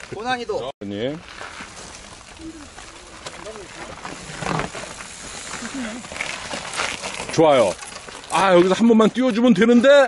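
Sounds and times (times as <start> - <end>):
mountain bike riding over rock: 1.2 - 9.8.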